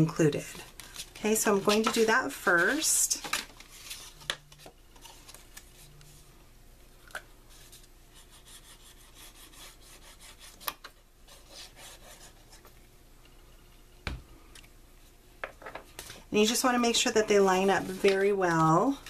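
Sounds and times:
paper rustling and rubbing: 0.5s - 6.2s, 17.4s - 19.0s.

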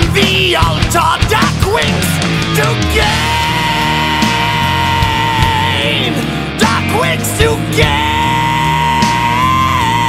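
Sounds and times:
heavy metal band playing: 0.0s - 10.0s
electric guitar lead note: 1.8s - 10.0s.

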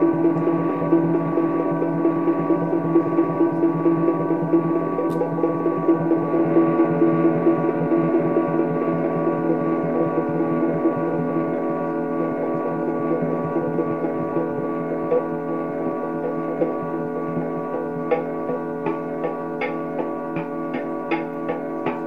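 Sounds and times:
ambient drone music: 0.0s - 22.0s.

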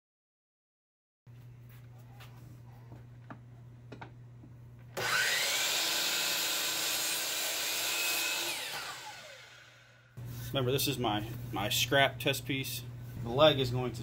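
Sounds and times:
miter saw cutting wood: 5.0s - 10.1s.

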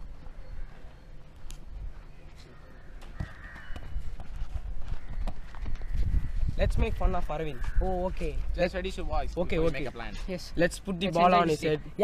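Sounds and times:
wind rumbling on microphone: 3.9s - 9.4s.

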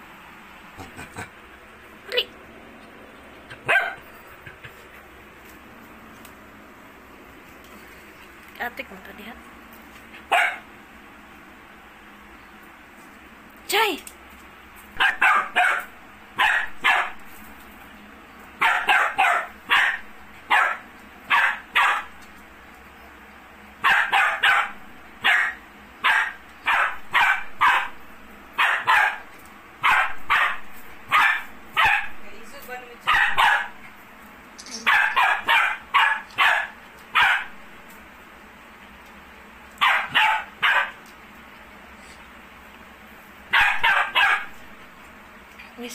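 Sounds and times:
dog barking: 3.6s - 4.1s, 10.3s - 10.7s, 15.0s - 17.2s, 18.6s - 22.2s, 23.8s - 28.0s, 28.6s - 32.2s, 33.0s - 33.9s, 34.8s - 37.6s, 39.8s - 41.0s, 43.5s - 44.6s.

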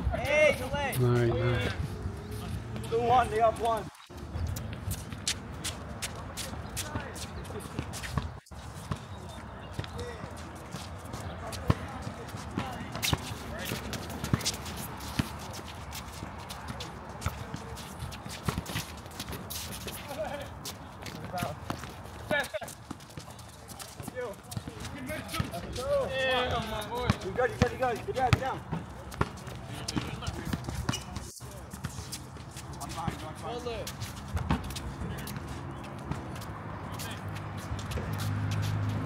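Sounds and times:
basketball bouncing on asphalt: 11.2s - 15.4s, 21.0s - 25.6s, 27.0s - 31.6s, 34.3s - 35.3s.

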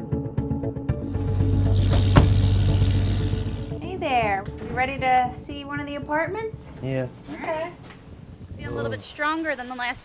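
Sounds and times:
background music low notes: 0.0s - 9.6s
sharp knock: 1.8s - 2.6s.

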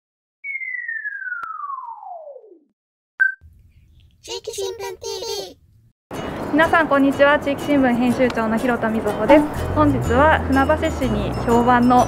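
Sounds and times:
falling whistle tone: 0.4s - 3.4s.

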